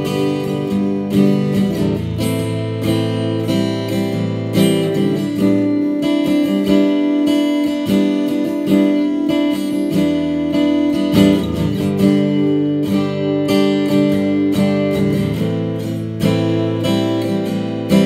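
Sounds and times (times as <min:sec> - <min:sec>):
acoustic guitar picked chords: 0:00.0 - 0:18.0.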